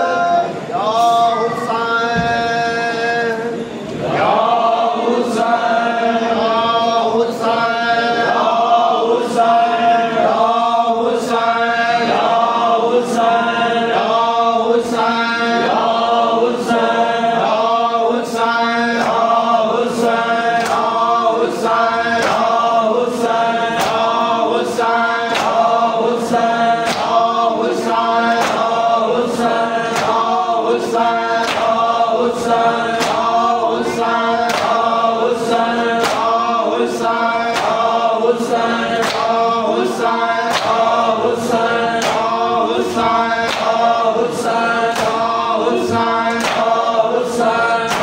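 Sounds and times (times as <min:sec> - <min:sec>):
men chanting together: 0:00.0 - 0:48.0
chest-beating slaps: 0:25.2 - 0:25.7, 0:26.8 - 0:27.2, 0:28.3 - 0:28.8, 0:31.4 - 0:31.8, 0:32.9 - 0:33.4, 0:34.0 - 0:34.9, 0:36.0 - 0:36.4, 0:37.5 - 0:38.0, 0:38.9 - 0:39.4, 0:43.4 - 0:43.9, 0:46.3 - 0:46.8, 0:47.7 - 0:48.0.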